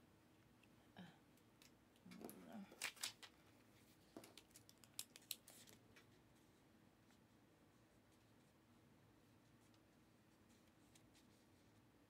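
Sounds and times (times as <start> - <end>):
trading cards and wrappers crinkling: 1.6 - 6.1.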